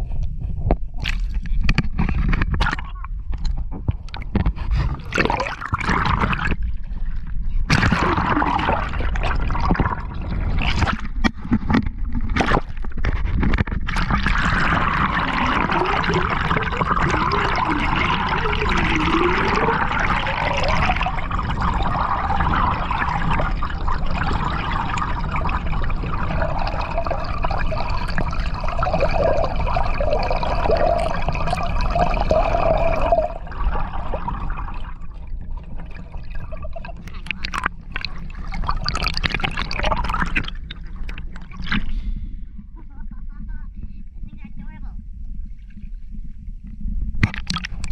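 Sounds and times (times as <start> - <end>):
muffled underwater rush: 0.0 - 47.9
water gurgling and sloshing: 0.0 - 47.9.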